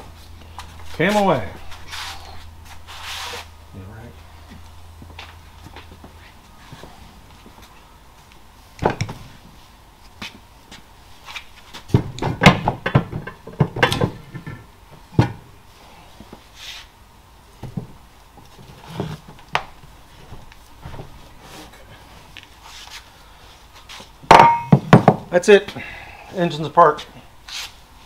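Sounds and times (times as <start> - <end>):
low steady hum: 0.0 - 28.0.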